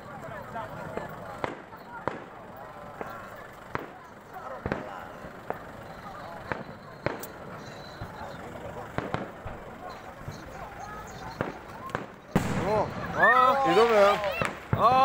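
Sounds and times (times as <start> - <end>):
crowd chatter: 0.0 - 15.0
fireworks banging: 0.1 - 15.0.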